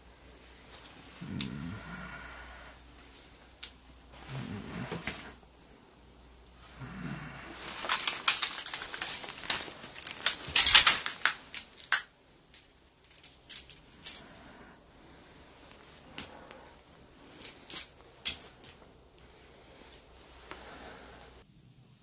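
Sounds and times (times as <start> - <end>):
objects clattering and rustling: 6.9 - 18.9.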